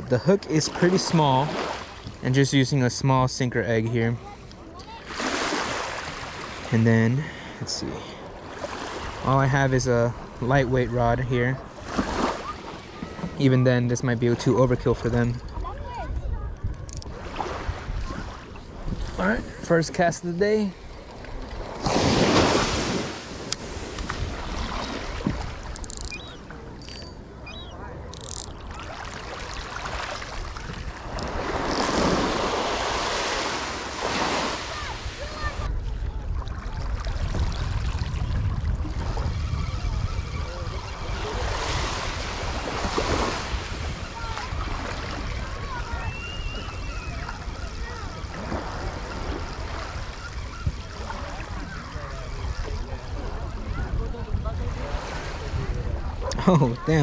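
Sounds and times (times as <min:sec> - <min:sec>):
small waves washing on beach: 0:00.0 - 0:03.5, 0:04.2 - 0:13.6, 0:16.8 - 0:26.8, 0:28.0 - 0:57.0
wind buffeting microphone: 0:14.7 - 0:19.7, 0:34.8 - 0:56.3.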